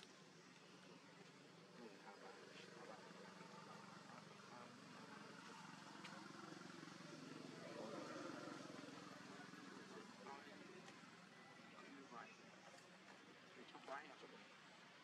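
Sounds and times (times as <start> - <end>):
distant indistinct voices: 0.0 - 15.0.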